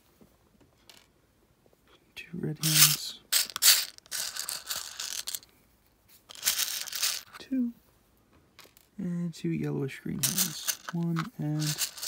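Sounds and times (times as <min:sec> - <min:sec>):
small plastic pieces rattling: 0:02.6 - 0:05.5, 0:06.3 - 0:07.4, 0:10.2 - 0:12.0.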